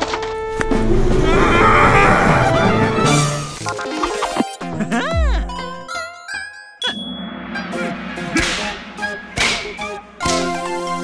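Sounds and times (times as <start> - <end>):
light cartoon music: 0.0 - 11.0
sharp ding: 6.8 - 7.4.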